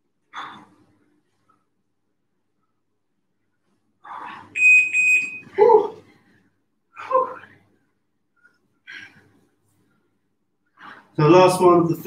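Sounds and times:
high-pitched electronic beep: 4.6 - 5.5.

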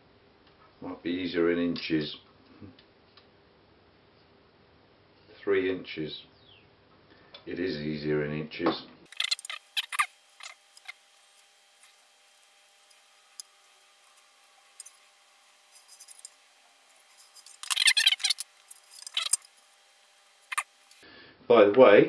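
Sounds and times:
hand tools clicking and scraping: 9.1 - 19.7, 20.4 - 21.0.

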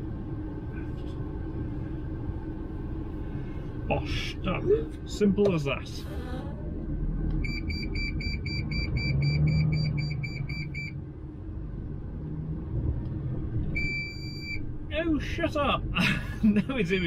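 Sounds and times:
truck engine and road rumble: 0.0 - 17.0.

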